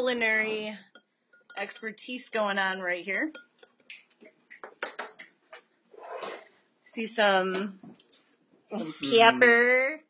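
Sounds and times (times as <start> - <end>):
fork clinking against ceramic bowl: 0.9 - 2.2, 3.2 - 3.9.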